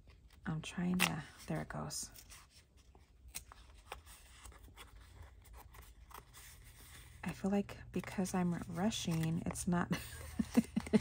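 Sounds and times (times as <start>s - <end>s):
scratchy rustling of card paper: 0.0s - 11.0s.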